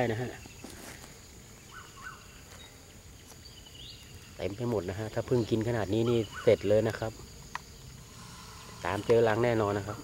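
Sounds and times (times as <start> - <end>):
rising bird chirps: 0.0 - 6.8, 7.5 - 10.0
high-pitched insect drone: 0.0 - 10.0.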